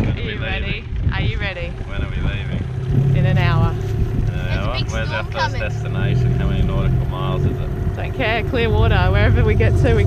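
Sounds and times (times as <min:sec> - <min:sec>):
outboard motor running: 0:00.0 - 0:10.0
wind buffeting microphone: 0:00.0 - 0:10.0
voices talking: 0:00.1 - 0:10.0.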